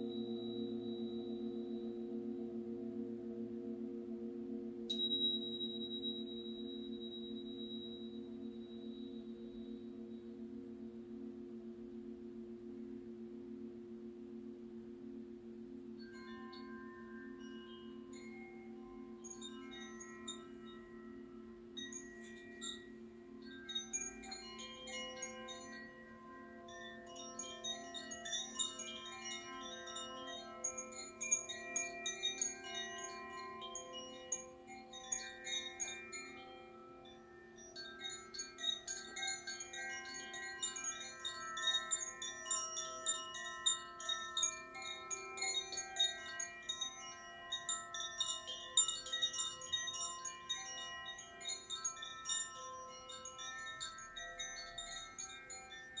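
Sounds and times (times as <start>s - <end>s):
low sustained ring: 0.0s - 56.0s
metal wind chimes tinkling: 16.1s - 56.0s.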